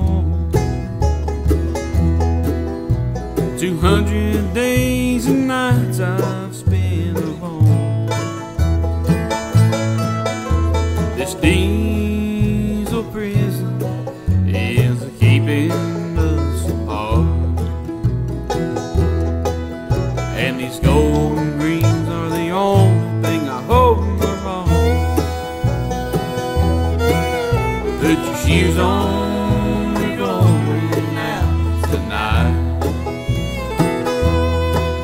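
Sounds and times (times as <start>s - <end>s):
acoustic guitars: 0.0s - 35.0s
banjo: 0.0s - 35.0s
upright bass line: 0.0s - 35.0s.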